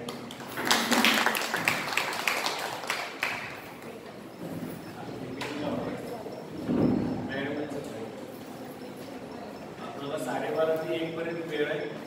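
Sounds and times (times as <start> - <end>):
audience clapping: 0.0 - 3.9.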